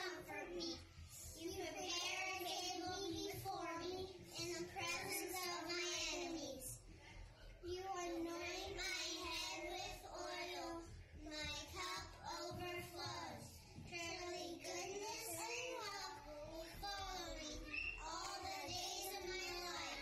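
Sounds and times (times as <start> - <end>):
children singing: 8.4 - 20.0.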